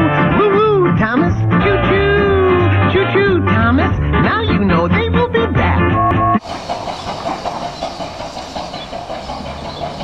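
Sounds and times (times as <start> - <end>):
rapid ticking clatter: 6.4 - 10.0.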